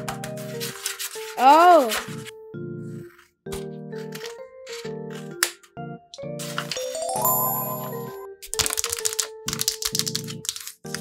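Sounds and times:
background music: 0.0s - 11.0s
paper taps and rustles: 3.1s - 5.7s, 8.5s - 11.0s
shimmering sparkle effect: 6.7s - 8.3s.

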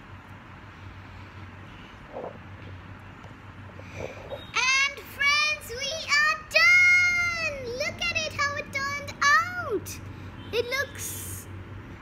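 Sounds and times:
girl singing: 4.6s - 10.0s.

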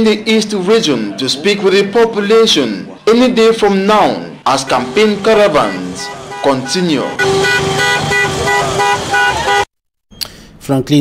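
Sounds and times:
held vehicle horn: 4.5s - 9.7s
short horn toots: 4.5s - 9.7s.

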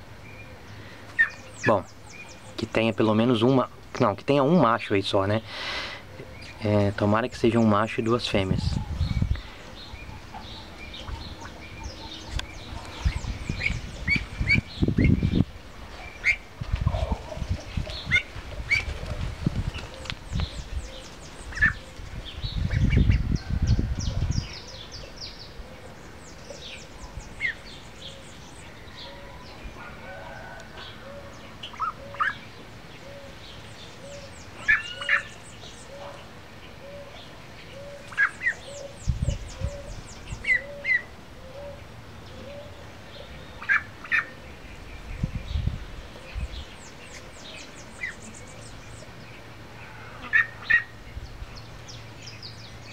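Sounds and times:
birds chirping: 0.0s - 52.9s
low rumbling noise: 6.0s - 34.6s.

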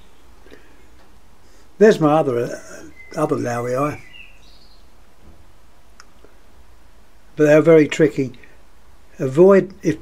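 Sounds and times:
steady low hum: 0.0s - 10.0s
faint high chirps: 2.5s - 4.9s.

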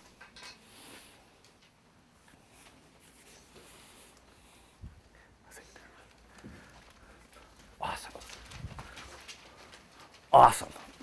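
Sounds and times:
paper rustling: 6.1s - 11.0s
man speaking: 7.8s - 8.3s, 10.3s - 10.9s.

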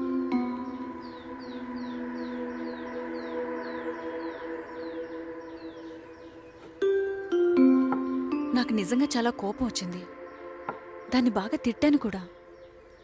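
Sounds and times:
sustained chord: 0.0s - 11.1s.

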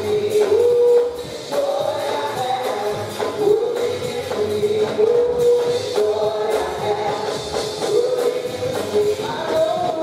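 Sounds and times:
band accompaniment: 0.0s - 10.0s
congregation singing: 0.0s - 10.0s
lead singer singing gospel: 0.0s - 10.0s.

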